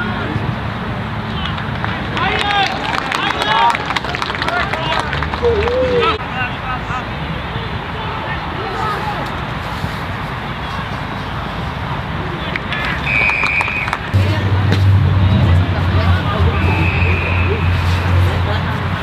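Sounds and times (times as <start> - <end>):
spectators talking: 0.0 - 19.0
umpire's whistle blasts: 13.0 - 14.0, 16.6 - 17.7.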